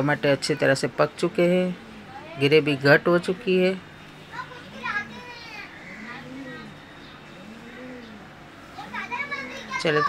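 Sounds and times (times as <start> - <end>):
children's voices calling: 0.0 - 10.0.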